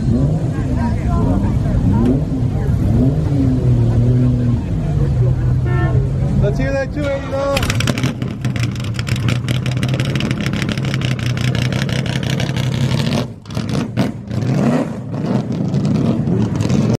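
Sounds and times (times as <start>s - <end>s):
car engine revving: 0.0s - 17.0s.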